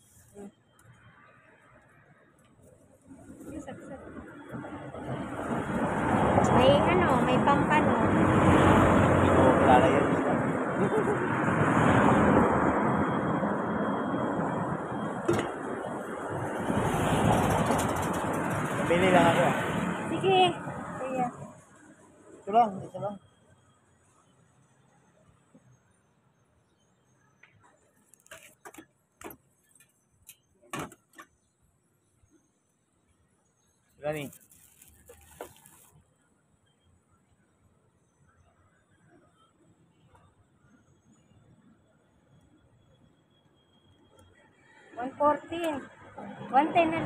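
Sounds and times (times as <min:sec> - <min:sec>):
voices: 0:03.4 - 0:04.2, 0:06.4 - 0:08.3, 0:09.1 - 0:11.4, 0:18.8 - 0:21.6, 0:45.0 - 0:47.0
vehicle passing by: 0:03.6 - 0:22.0.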